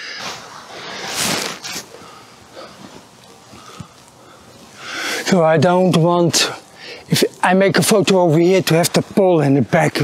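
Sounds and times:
man breathing heavily: 0:00.0 - 0:05.3, 0:06.6 - 0:07.1
rustling: 0:00.0 - 0:05.4.

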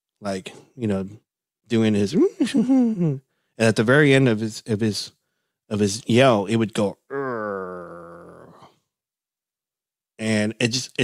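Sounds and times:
man imitating horse call: 0:07.1 - 0:08.7.

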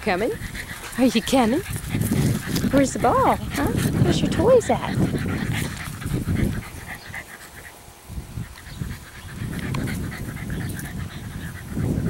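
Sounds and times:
puppy panting: 0:00.0 - 0:12.0.

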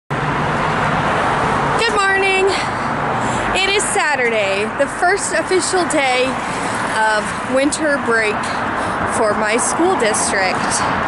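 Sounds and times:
street traffic passing cars: 0:00.1 - 0:11.0
woman speaking: 0:01.8 - 0:02.8, 0:03.4 - 0:11.0.

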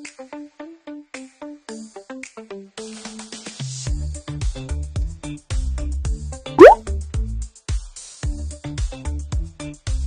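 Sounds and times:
rising bloop sound effect: 0:06.6 - 0:06.8.

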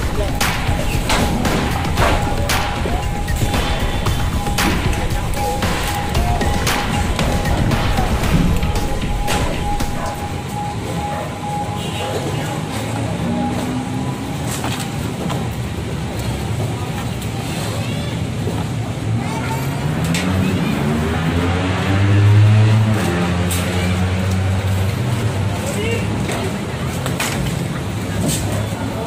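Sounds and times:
background voices: 0:00.0 - 0:14.5
road traffic: 0:00.0 - 0:29.0
vehicle engine accelerating: 0:19.0 - 0:26.8.

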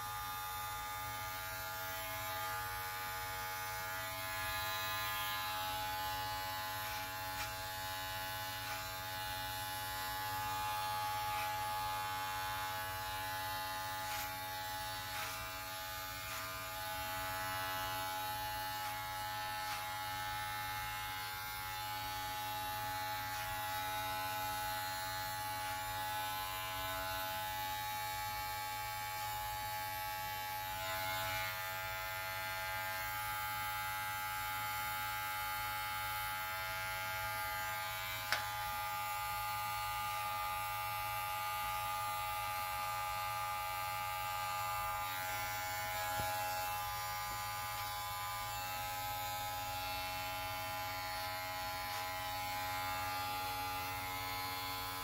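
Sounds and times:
electric hair clipper buzzing: 0:00.0 - 0:55.0.

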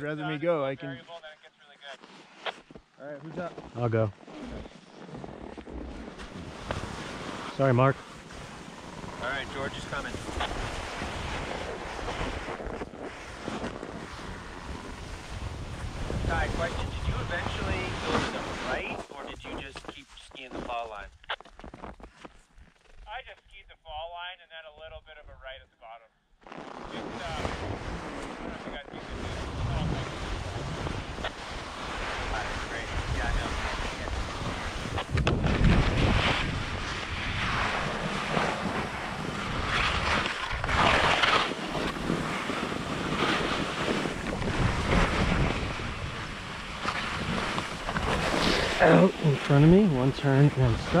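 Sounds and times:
skis scraping on snow: 0:01.9 - 0:21.0, 0:26.4 - 0:51.0
wind rushing over microphone: 0:08.5 - 0:19.7, 0:27.2 - 0:51.0.

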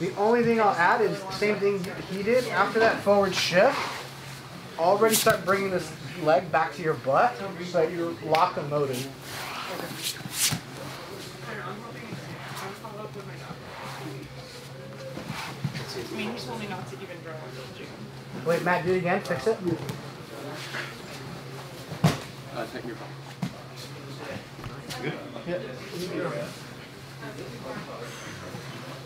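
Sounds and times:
faint background talking: 0:00.0 - 0:29.0.

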